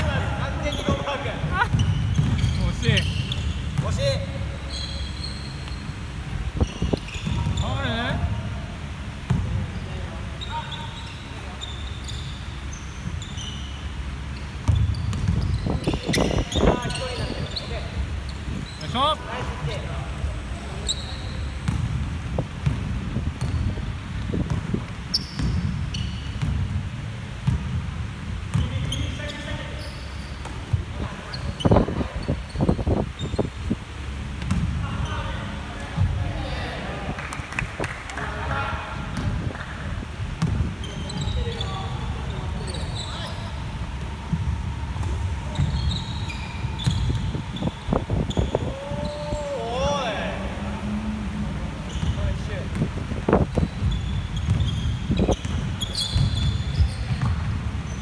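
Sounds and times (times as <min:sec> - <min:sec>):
players' voices: 0:00.0 - 0:05.1, 0:15.8 - 0:21.7, 0:34.0 - 0:40.1, 0:40.8 - 0:53.7
sneakers squeaking: 0:00.0 - 0:58.0
basketball bouncing on wooden floor: 0:01.7 - 0:02.6, 0:14.6 - 0:16.4, 0:27.4 - 0:27.8.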